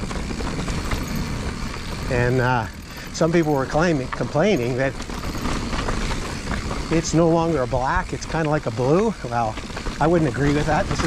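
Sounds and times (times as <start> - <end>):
mountain bike tyre rush: 0.0 - 11.0.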